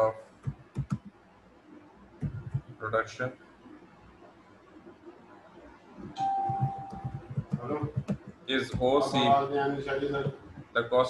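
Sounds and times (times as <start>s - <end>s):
person speaking: 2.2s - 3.2s, 6.0s - 11.0s
steady electronic tone: 6.0s - 7.5s.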